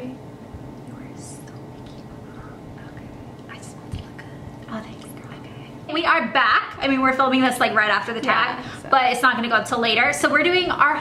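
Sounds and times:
low room hum: 0.0s - 11.0s
women whispering and breathing: 0.8s - 5.8s.

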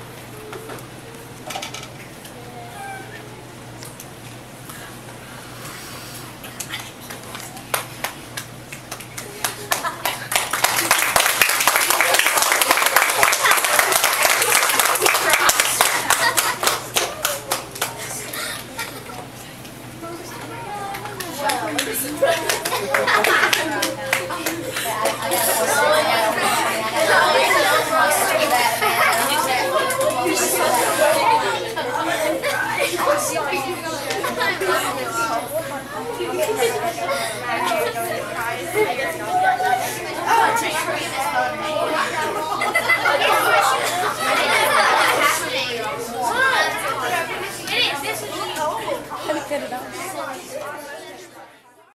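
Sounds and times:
children chattering: 0.0s - 51.9s.

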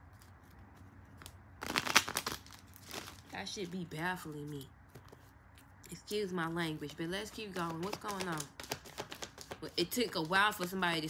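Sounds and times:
crinkling handling noise: 0.0s - 5.9s, 7.2s - 10.8s.

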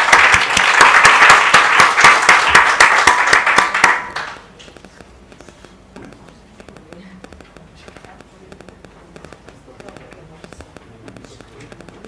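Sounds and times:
crackling clicks: 4.2s - 12.0s.

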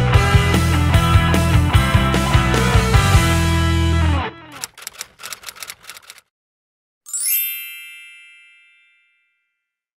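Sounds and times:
typewriter keystroke clicks: 4.6s - 6.2s.

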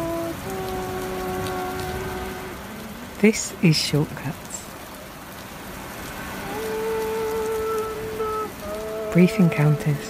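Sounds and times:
sustained musical notes: 0.0s - 4.2s, 5.7s - 10.0s
steady rain: 0.0s - 10.0s.

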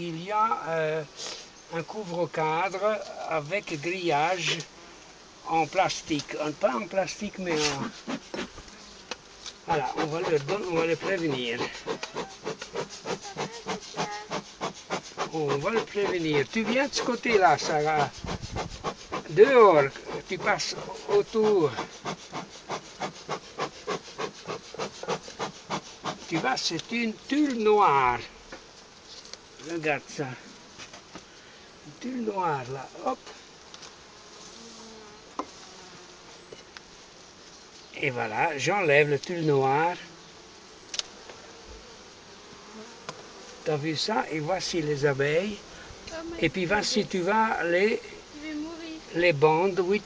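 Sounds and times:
bee smoker bellows puffing: 0.9s - 50.0s.

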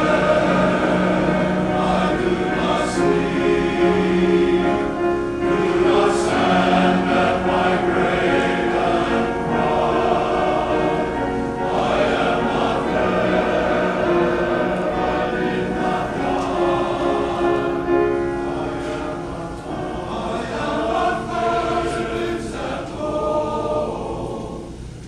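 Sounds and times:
men's chorus singing: 0.0s - 24.9s.

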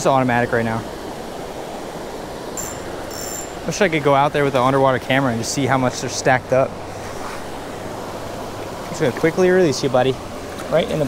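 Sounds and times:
creek water rushing: 0.0s - 11.0s.

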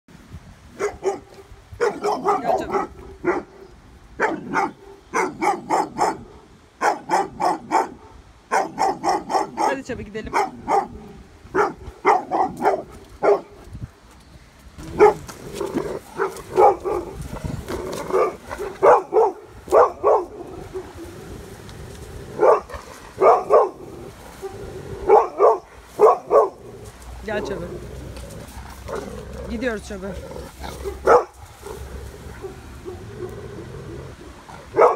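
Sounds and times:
dog barking: 0.8s - 3.5s, 4.2s - 13.5s, 15.0s - 15.2s, 16.2s - 17.2s, 18.1s - 20.9s, 22.4s - 23.8s, 24.4s - 26.6s, 30.8s - 33.4s.

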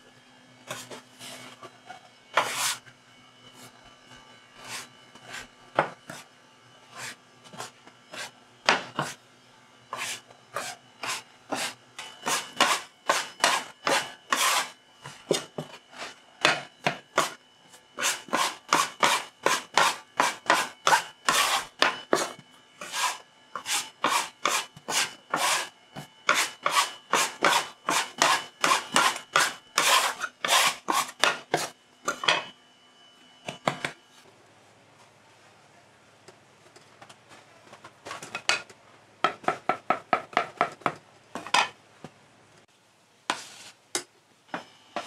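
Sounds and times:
dough scraper scraping dough: 0.6s - 2.9s, 4.6s - 6.3s, 6.9s - 9.2s, 9.9s - 17.4s, 18.0s - 32.5s.

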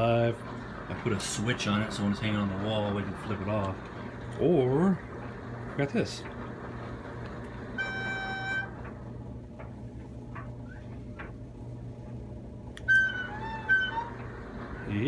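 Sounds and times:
low electrical hum: 0.0s - 15.0s.

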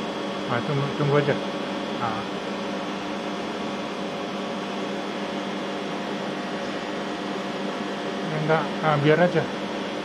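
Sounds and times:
steady machinery hum: 0.0s - 10.0s.

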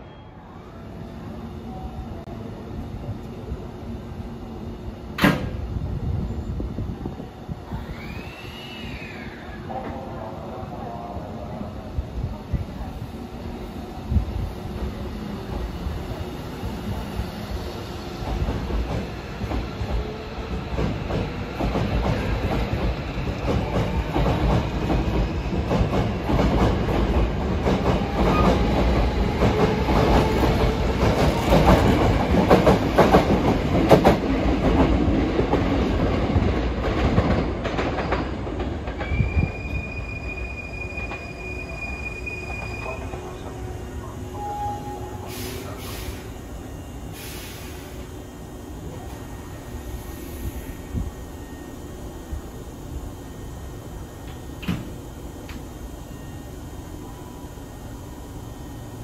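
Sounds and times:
high squeal: 7.7s - 9.8s, 39.0s - 47.8s.

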